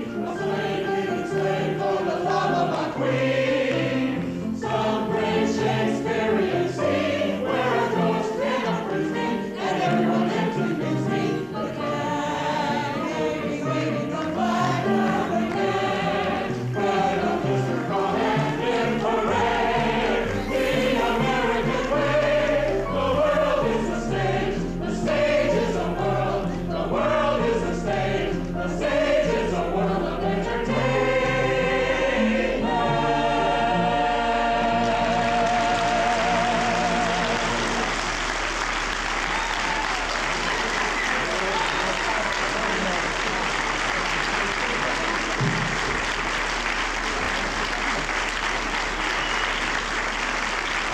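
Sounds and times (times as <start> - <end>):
mixed chorus singing: 0.0 - 50.9
audience applause: 35.1 - 50.9.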